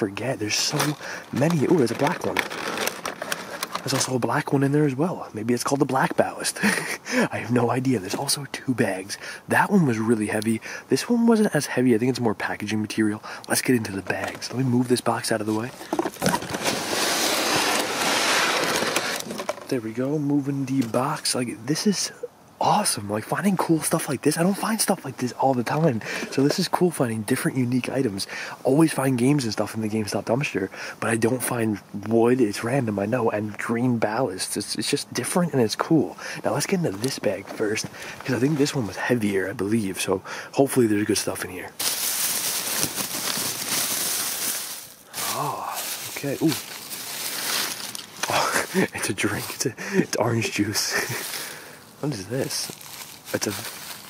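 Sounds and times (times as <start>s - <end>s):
plastic bag rustling: 0.2s - 4.6s, 13.5s - 20.0s, 26.0s - 26.8s, 41.8s - 49.7s, 50.3s - 54.0s
cardboard box scraping on ground: 0.6s - 4.1s, 15.4s - 19.7s, 41.8s - 49.5s.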